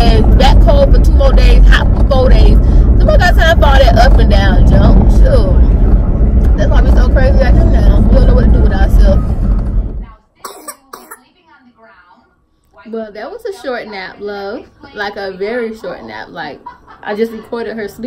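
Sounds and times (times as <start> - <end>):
woman talking: 0.0 - 5.7, 6.5 - 9.3, 10.0 - 18.0
steady low hum: 0.0 - 17.9.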